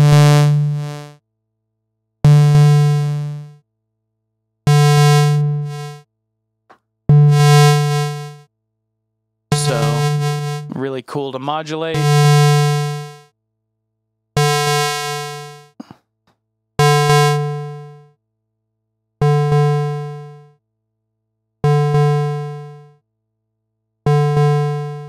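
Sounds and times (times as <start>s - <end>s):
low buzzy synthesizer note: 9.5s - 10.8s.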